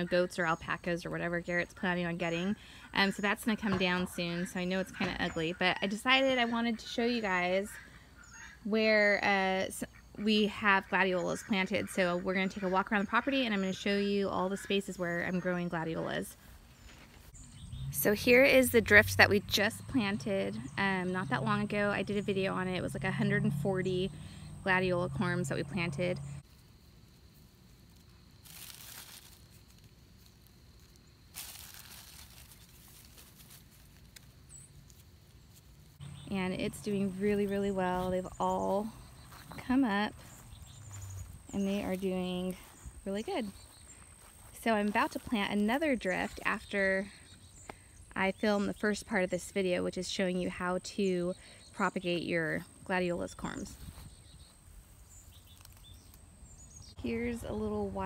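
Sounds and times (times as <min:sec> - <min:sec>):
rustling and crinkling of plastic: 0:27.5 - 0:36.0.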